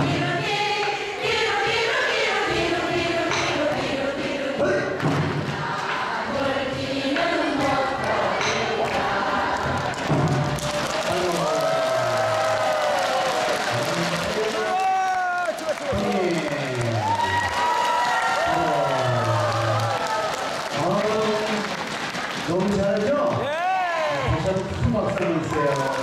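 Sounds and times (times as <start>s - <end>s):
audience applause: 9.4s - 26.0s.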